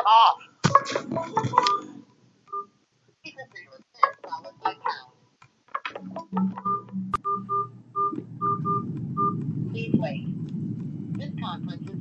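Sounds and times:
short electronic beeps: 0:06.0 - 0:09.4
low background rumble: 0:06.0 - 0:12.0.

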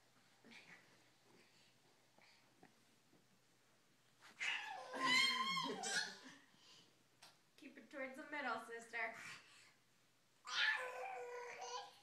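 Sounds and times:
toddler squealing: 0:04.4 - 0:06.2, 0:10.5 - 0:11.9
woman's voice: 0:07.6 - 0:09.3.

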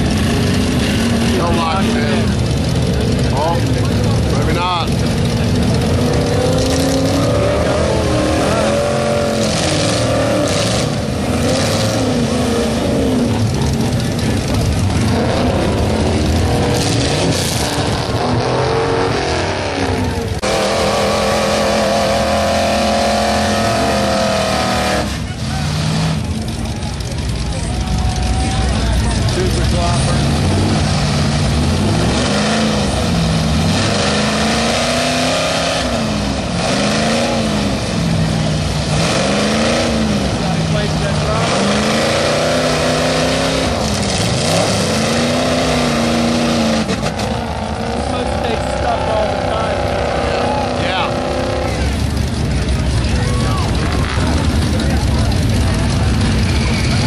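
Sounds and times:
tyres churning mud: 0:00.0 - 0:57.0
vehicle engine revving: 0:00.0 - 0:57.0.

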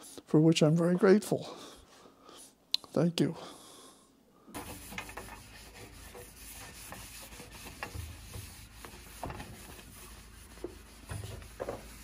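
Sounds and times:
cloth rubbing metal: 0:04.5 - 0:12.0.

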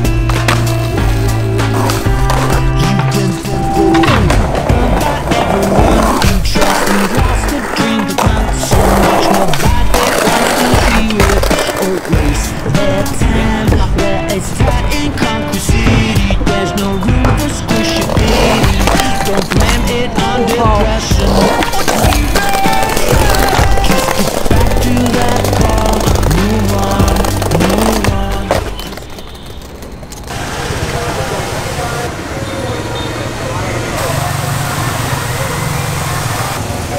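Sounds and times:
loud background music: 0:00.0 - 0:28.6
skateboard wheels rolling: 0:00.0 - 0:36.9
skateboard popping and landing: 0:00.1 - 0:14.9, 0:15.8 - 0:30.3.

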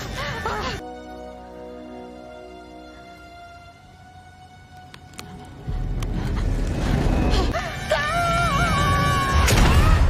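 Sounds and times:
deep rumbling film score: 0:00.0 - 0:10.0.

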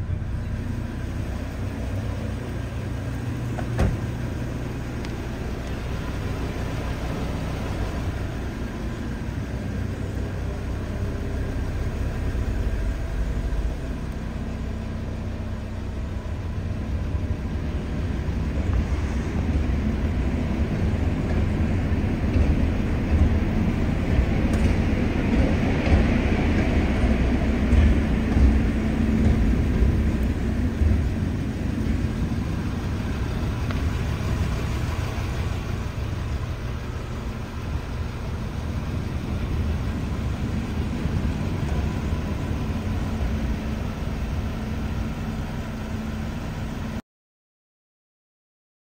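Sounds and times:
car engine idling: 0:00.0 - 0:47.0.

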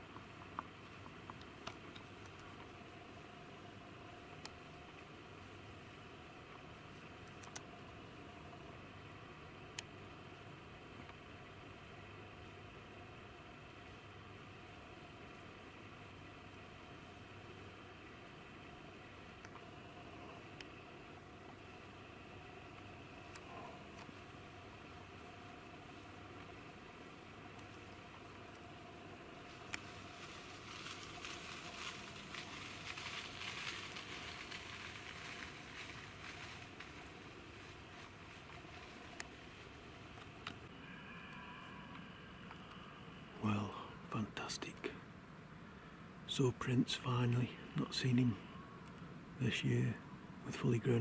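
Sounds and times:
outdoor background hum: 0:00.0 - 0:51.0
rustling: 0:22.6 - 0:41.5.

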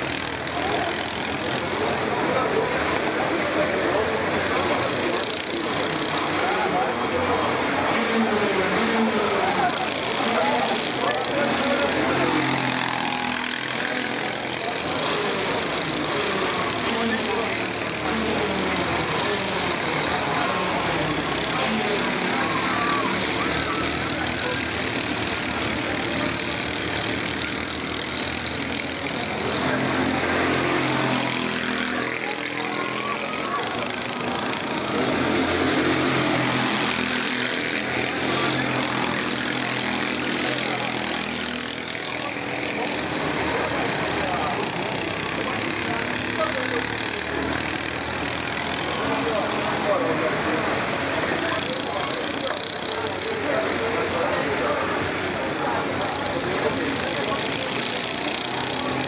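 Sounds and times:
racing kart engines: 0:00.0 - 0:59.0.

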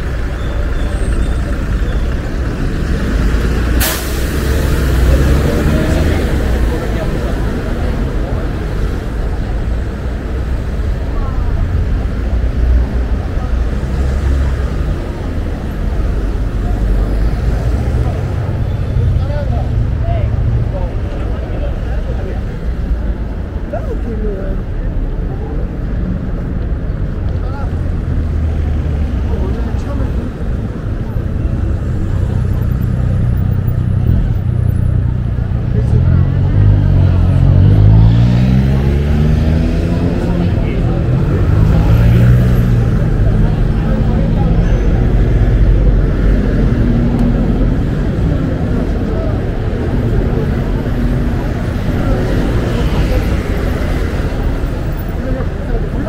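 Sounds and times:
city traffic rumbling: 0:00.0 - 0:56.0
vehicle accelerating past: 0:02.8 - 0:06.8, 0:36.2 - 0:48.4.

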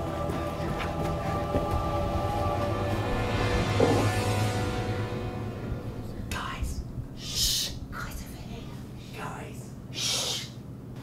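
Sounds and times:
person whispering: 0:06.2 - 0:10.6.

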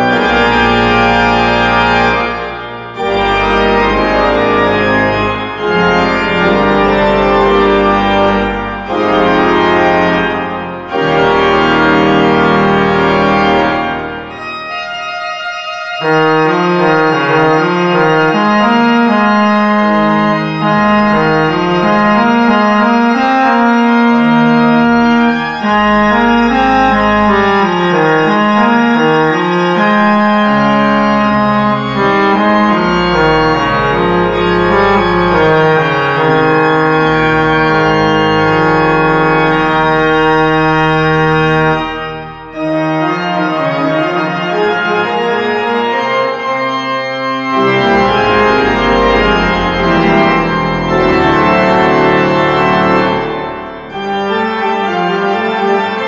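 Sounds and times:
pipe organ chords: 0:00.0 - 0:56.0.

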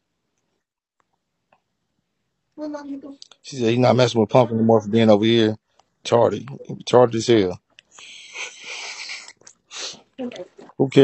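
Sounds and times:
person breathing out hiss: 0:09.7 - 0:10.0.

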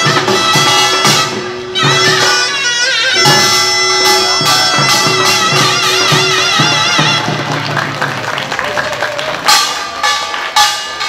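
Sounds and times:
percussion band struck accents: 0:00.0 - 0:11.0.

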